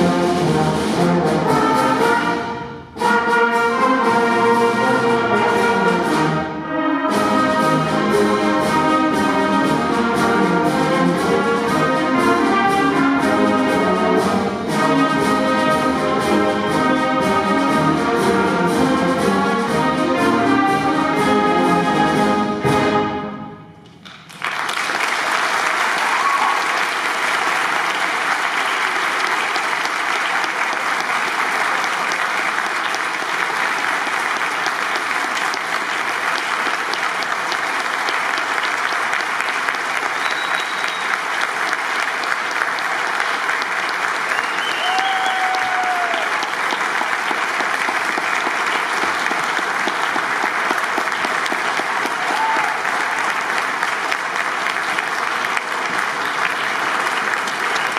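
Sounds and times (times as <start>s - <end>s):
audience applauding: 24.0s - 57.9s
calls from crowd: 24.7s - 57.9s.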